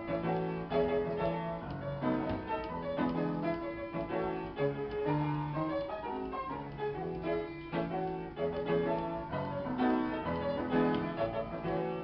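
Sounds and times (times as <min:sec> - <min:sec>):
player piano playing chords: 0:00.0 - 0:12.0.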